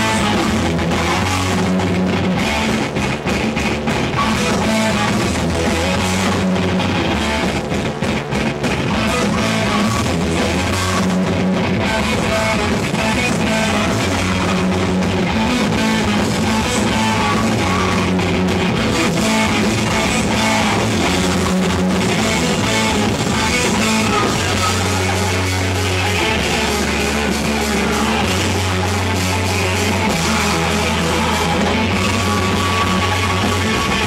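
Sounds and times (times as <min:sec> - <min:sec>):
distorted electric guitars: 0:00.0 - 0:34.0
drum kit: 0:00.0 - 0:34.0.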